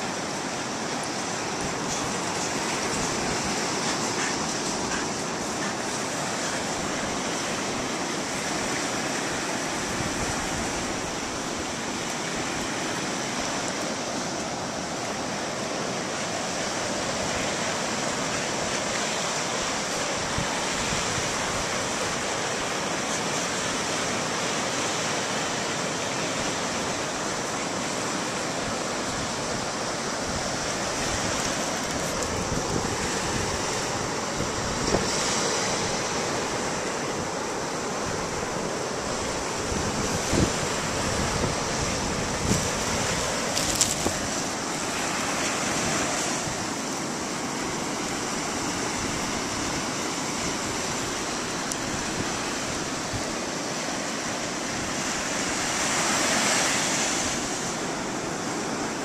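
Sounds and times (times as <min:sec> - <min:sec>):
ocean surf: 0:00.0 - 0:59.0
wind buffeting microphone: 0:29.0 - 0:46.7.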